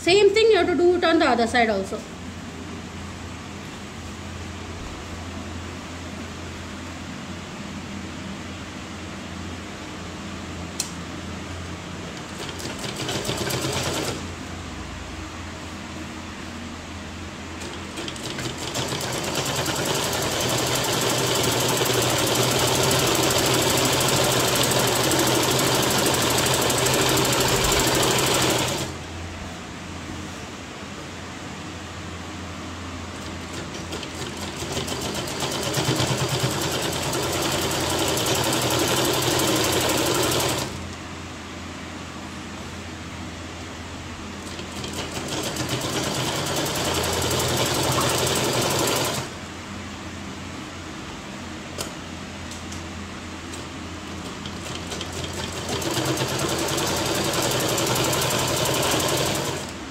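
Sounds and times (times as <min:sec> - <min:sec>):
sewing machine stitching fabric: 0:12.1 - 0:14.2, 0:17.6 - 0:29.0, 0:33.2 - 0:40.8, 0:44.4 - 0:49.4, 0:54.2 - 0:59.8.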